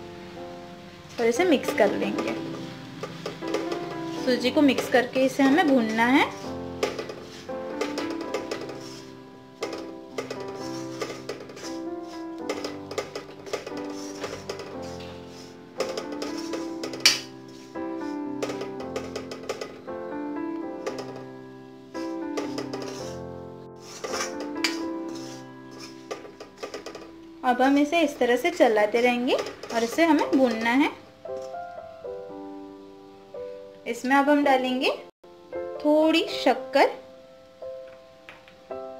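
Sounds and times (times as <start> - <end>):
instrumental background music: 0.0 - 38.9
metal spatula scraping iron pan: 1.1 - 19.9, 20.6 - 21.4, 22.0 - 31.5.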